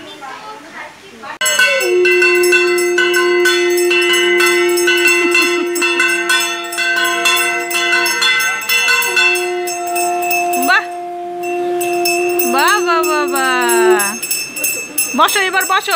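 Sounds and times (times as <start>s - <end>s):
conch shell blown: 1.4s - 14.4s
hand bell rung fast: 1.4s - 15.9s.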